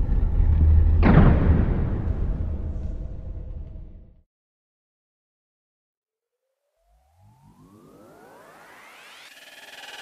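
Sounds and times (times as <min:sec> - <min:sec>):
synthesizer riser: 0:06.4 - 0:10.0.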